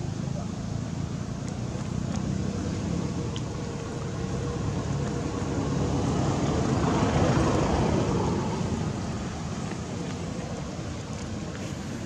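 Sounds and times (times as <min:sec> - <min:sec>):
rumbling background noise: 0:00.0 - 0:12.0.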